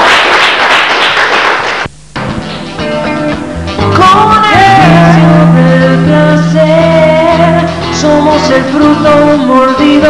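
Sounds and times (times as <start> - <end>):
people clapping: 0.0 - 1.9.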